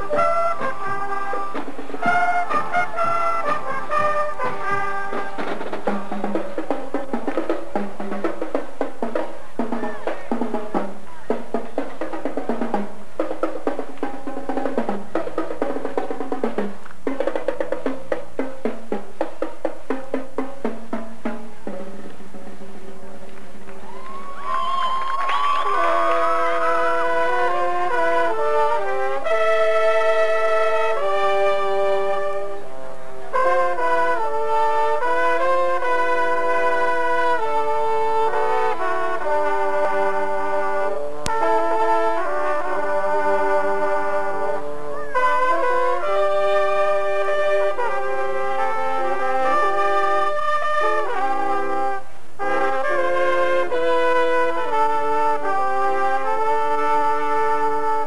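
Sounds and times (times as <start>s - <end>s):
rapid snare drum strokes: 0.0s - 22.1s
brass bugles playing chords: 0.0s - 24.0s, 25.4s - 58.0s.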